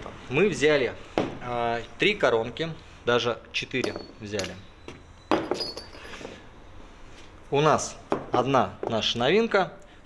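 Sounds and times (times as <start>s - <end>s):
metal bits clinking together: 3.8s - 4.7s, 5.3s - 6.3s.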